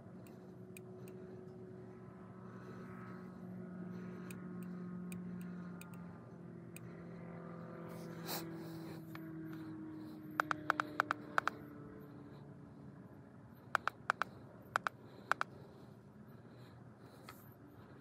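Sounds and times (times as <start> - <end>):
vehicle hum inside cab: 0.0 - 18.0
light ticks: 10.4 - 11.6, 13.8 - 15.5.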